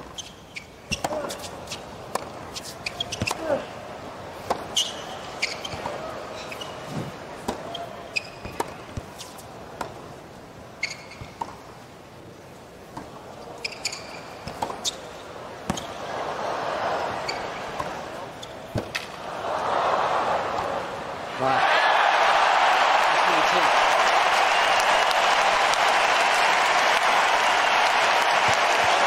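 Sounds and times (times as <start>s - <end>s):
sneaker squeaks on court: 0.0s - 1.5s, 2.6s - 3.4s, 4.7s - 6.9s, 7.6s - 9.3s, 10.8s - 11.5s, 13.6s - 15.1s
stadium crowd noise: 0.0s - 11.4s, 12.2s - 29.0s
tennis ball struck by rackets: 2.1s - 3.5s, 8.4s - 10.0s, 14.4s - 14.9s.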